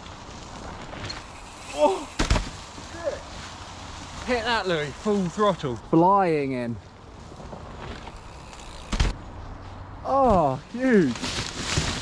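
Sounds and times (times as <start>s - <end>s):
bike tyres rustling over leaves: 0.0s - 12.0s
sharp thud: 2.2s - 2.6s.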